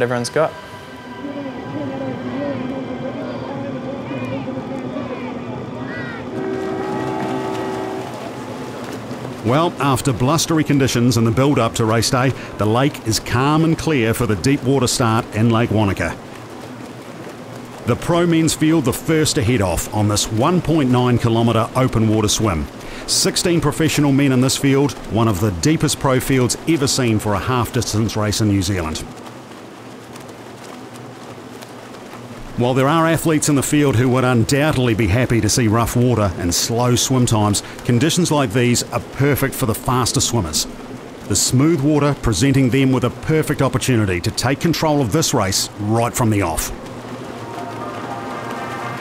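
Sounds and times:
background voices: 0.0s - 7.5s
water: 0.0s - 49.0s
horn held tone: 6.3s - 8.7s, 47.4s - 49.0s.

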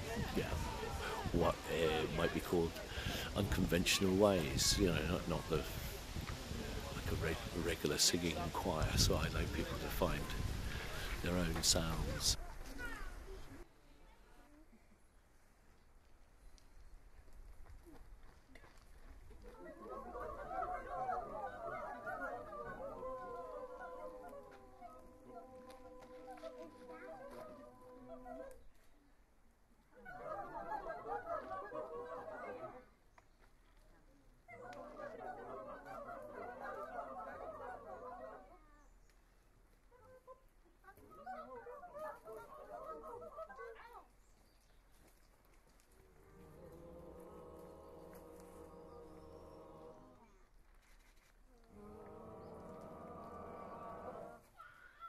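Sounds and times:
choir making animal-like vocal sounds: 0.0s - 4.6s, 19.5s - 28.6s, 29.9s - 33.0s, 34.5s - 38.7s, 41.0s - 43.8s, 46.0s - 50.4s, 51.6s - 54.5s.

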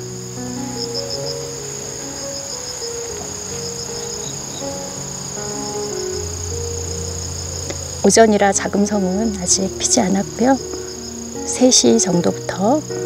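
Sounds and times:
insect continuous high trill: 0.0s - 13.0s
insect pulsing high trill: 0.0s - 13.0s
soft slow background music: 0.0s - 13.0s.

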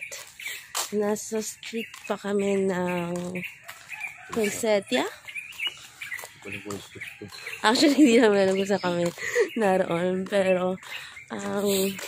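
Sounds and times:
chickens calling: 0.0s - 12.0s.

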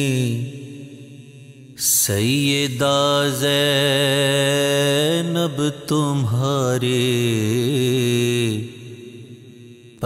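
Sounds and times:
man singing: 0.0s - 9.3s.

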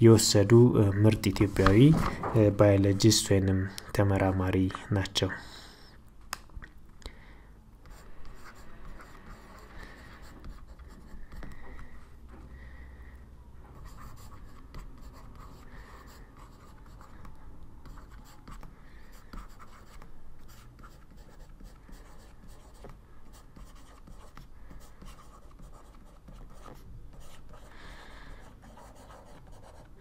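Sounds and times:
stylus scratching and tapping: 19.4s - 27.6s.

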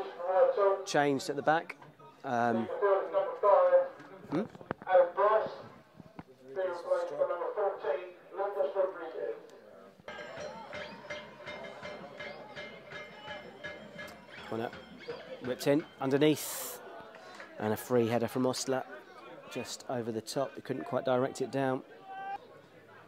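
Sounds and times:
music with steady beat: 10.1s - 16.3s.

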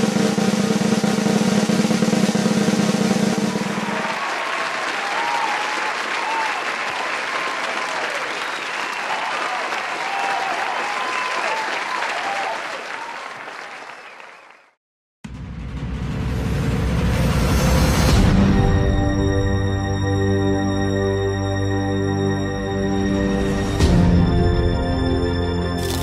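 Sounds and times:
snare drum roll: 0.0s - 5.4s
audience applauding: 3.5s - 14.8s
cheering voices: 3.5s - 14.8s.

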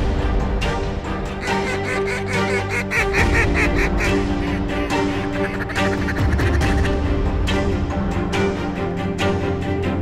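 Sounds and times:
background music: 0.0s - 10.0s
geese honking: 1.4s - 7.0s.

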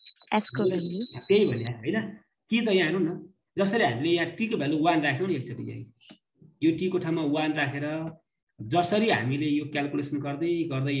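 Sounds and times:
steady high-pitched tone: 0.0s - 1.7s
man speaking: 0.5s - 5.9s.

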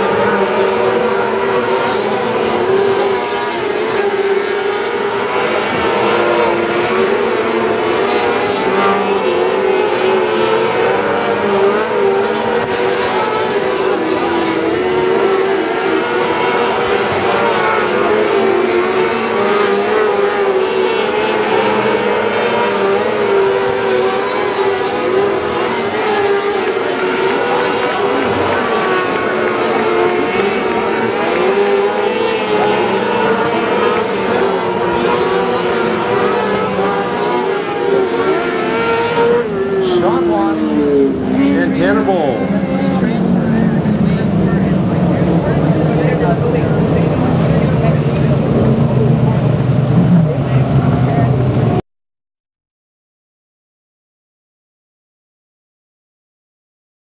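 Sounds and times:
racing car engines: 0.0s - 51.8s.

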